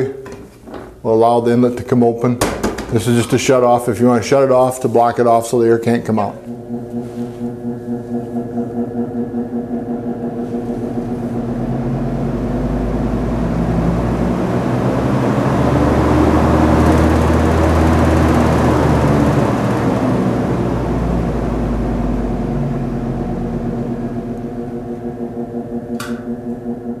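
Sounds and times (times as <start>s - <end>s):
ventilation fans humming: 0.0s - 27.0s.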